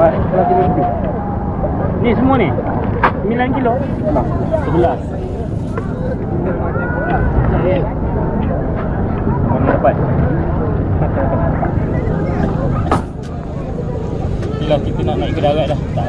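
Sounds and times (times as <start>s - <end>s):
people talking: 0.0s - 16.0s
steady low rumble: 0.0s - 16.0s.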